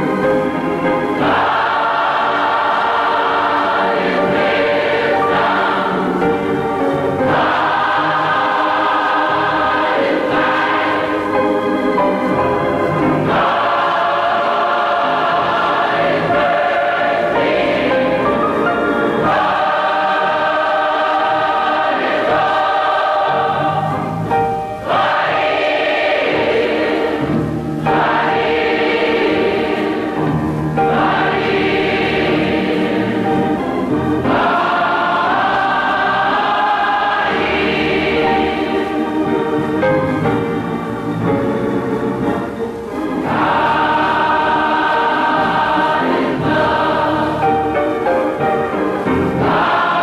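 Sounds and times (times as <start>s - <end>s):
gospel choir singing: 0.0s - 50.0s.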